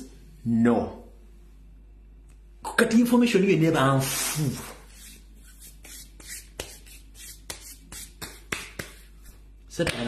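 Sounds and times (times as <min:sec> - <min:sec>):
hands rubbing together: 0:04.0 - 0:09.5.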